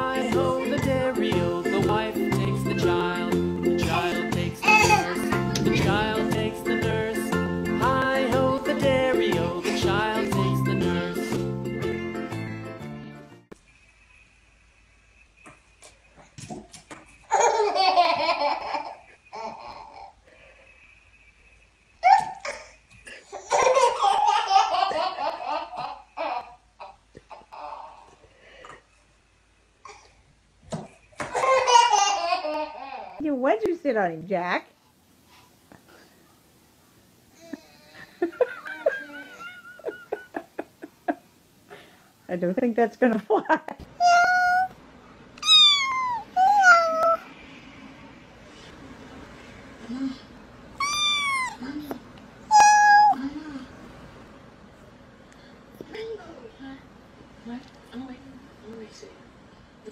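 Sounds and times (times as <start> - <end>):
baby laughing: 4.6 - 5.9, 17.3 - 20.2, 22.0 - 28.2, 31.3 - 33.2, 50.8 - 51.7, 52.5 - 53.2
kitten meowing: 45.4 - 47.2, 50.8 - 51.6, 52.5 - 53.2.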